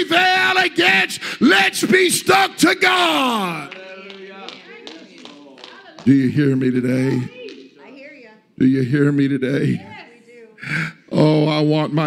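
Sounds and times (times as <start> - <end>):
congregation calling out responses: 0.0 - 11.7.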